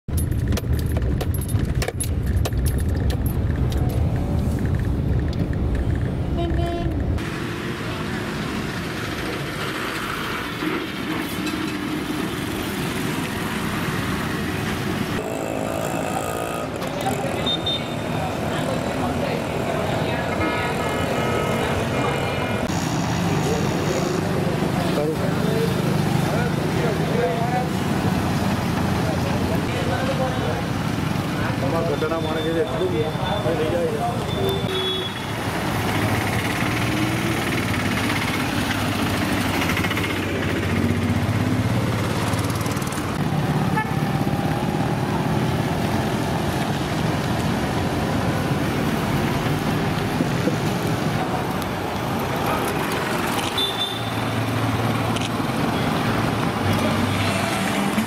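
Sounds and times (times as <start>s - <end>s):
motorbike traffic: 0.1s - 58.0s
people's voices: 15.2s - 28.0s.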